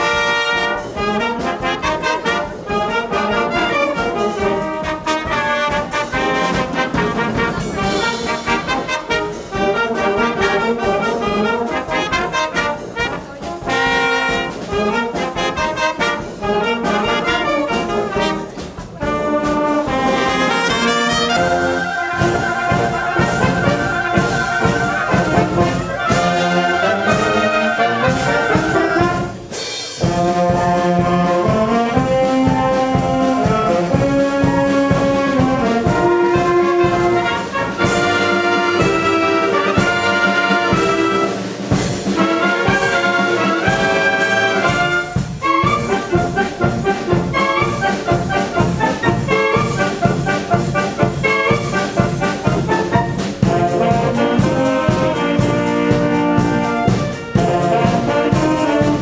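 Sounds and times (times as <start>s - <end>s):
concert wind band playing: 0.0s - 59.0s.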